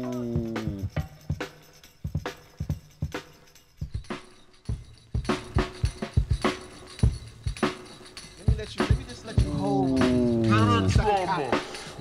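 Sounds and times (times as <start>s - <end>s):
hip-hop drum break from vinyl: 3.8s - 12.0s.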